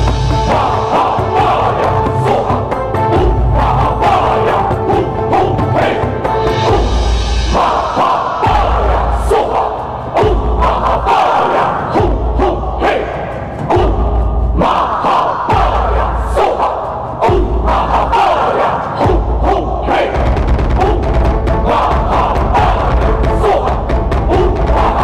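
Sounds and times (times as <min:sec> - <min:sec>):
voices chanting in unison: 0:00.0 - 0:25.0
deep drum beating slowly: 0:05.0 - 0:07.7, 0:19.0 - 0:25.0.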